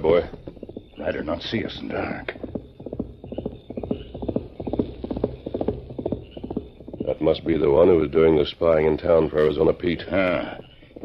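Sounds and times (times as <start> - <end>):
horse hoofbeats galloping: 0.0 - 11.0.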